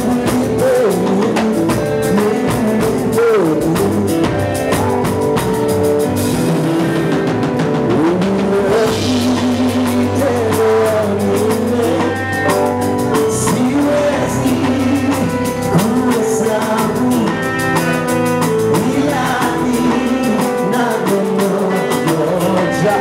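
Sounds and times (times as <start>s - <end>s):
man singing into a microphone: 0.0s - 5.3s, 6.8s - 23.0s
bass: 0.0s - 23.0s
drum kit: 0.0s - 23.0s.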